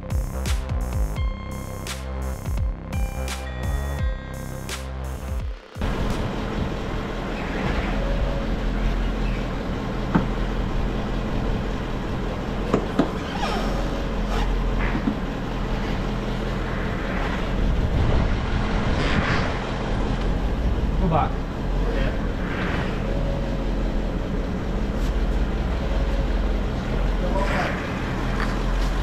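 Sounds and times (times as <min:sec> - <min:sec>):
electronic music: 0:00.0 - 0:06.6
low workshop hum: 0:05.6 - 0:29.0.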